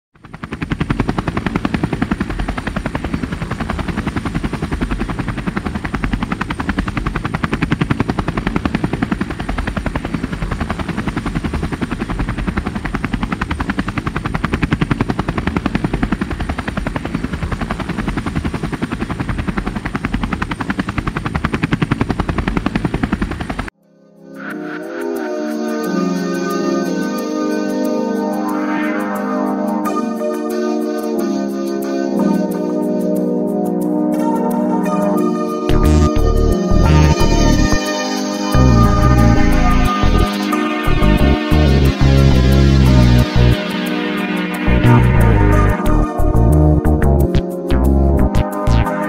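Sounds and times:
helicopter rotor beating: 0:00.2 - 0:23.8, 0:35.3 - 0:49.0.

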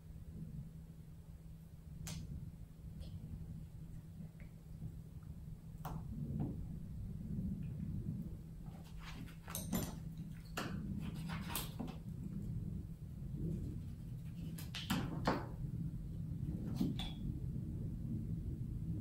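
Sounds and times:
low steady hum: 0:00.0 - 0:19.0
scissors snipping paper: 0:10.6 - 0:12.0.

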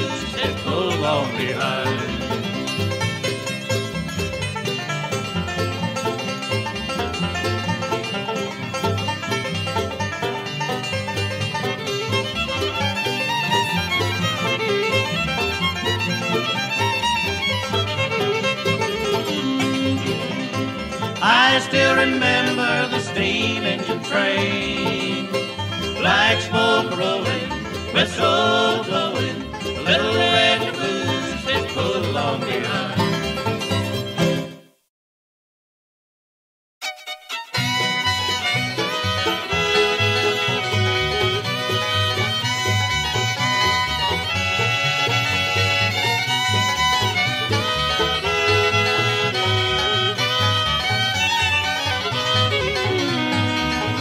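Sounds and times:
bluegrass band playing: 0:00.0 - 0:34.6, 0:36.8 - 0:54.0
fiddle: 0:00.0 - 0:34.6, 0:36.8 - 0:54.0
banjo: 0:00.0 - 0:34.8, 0:36.8 - 0:54.0.

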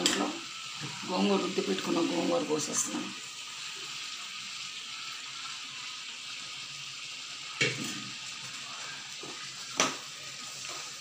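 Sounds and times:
curry sizzling in a pan: 0:00.0 - 0:11.0
sharp clank against a pan: 0:07.6 - 0:08.1.

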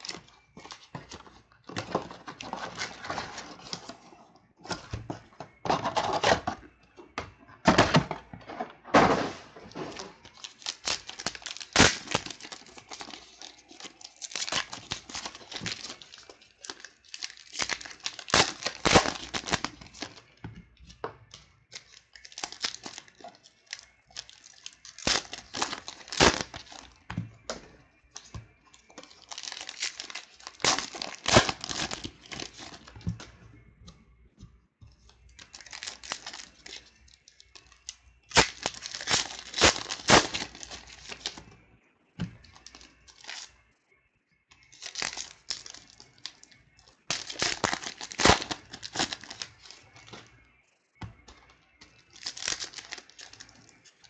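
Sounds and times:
wrappers tearing and crinkling: 0:00.0 - 0:04.0, 0:09.1 - 0:20.4, 0:21.7 - 0:27.0, 0:29.0 - 0:33.1, 0:35.4 - 0:41.4, 0:42.4 - 0:43.5, 0:44.6 - 0:50.3, 0:52.0 - 0:54.0.

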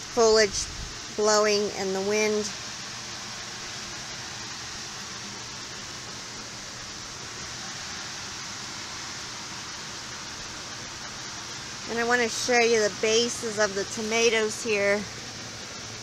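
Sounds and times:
circulating fan air hiss: 0:00.0 - 0:16.0.

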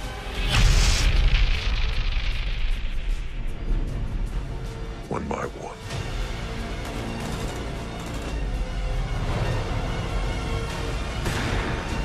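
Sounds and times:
trailer music: 0:00.0 - 0:12.0.

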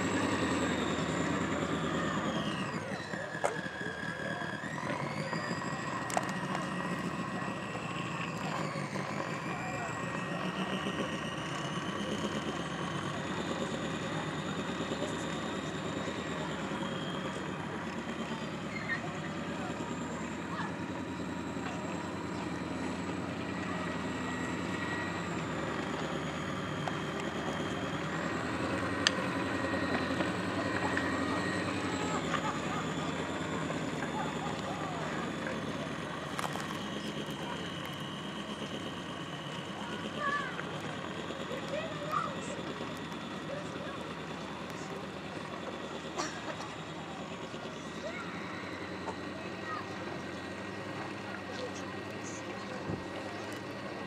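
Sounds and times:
electric motor whine: 0:00.0 - 0:54.0
outdoor background noise: 0:00.0 - 0:54.0.

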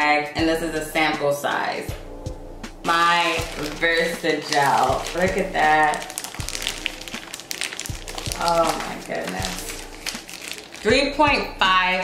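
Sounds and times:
faint background music: 0:00.0 - 0:12.0
plastic bag crinkling: 0:02.9 - 0:11.4.

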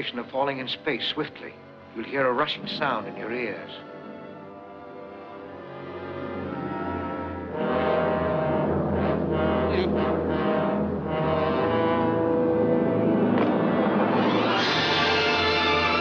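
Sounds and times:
dramatic orchestral music: 0:00.0 - 0:16.0.

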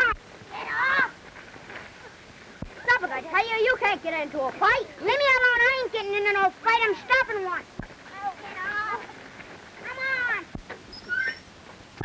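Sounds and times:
children yelling: 0:00.0 - 0:01.2, 0:04.8 - 0:09.1, 0:09.8 - 0:10.5.

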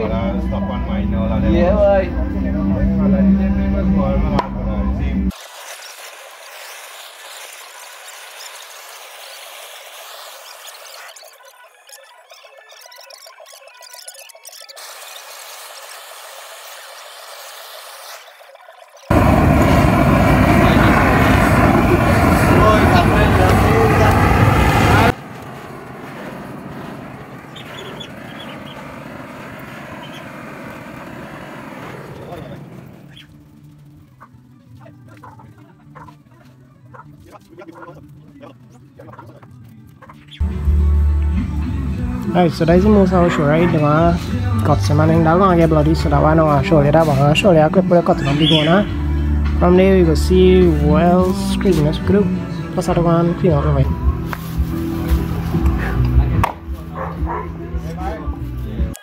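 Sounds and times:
blowtorch flame rushing: 0:05.3 - 0:11.3, 0:19.1 - 0:33.3.

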